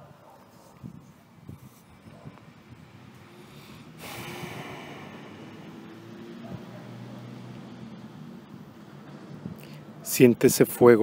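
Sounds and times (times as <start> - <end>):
long breath close to microphone: 3.2 - 6.7.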